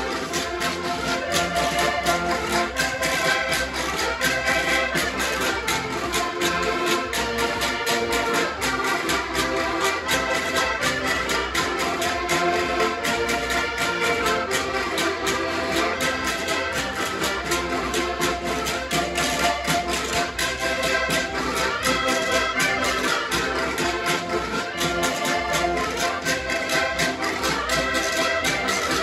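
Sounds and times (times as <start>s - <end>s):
button accordions playing folk tune: 0.0s - 29.0s.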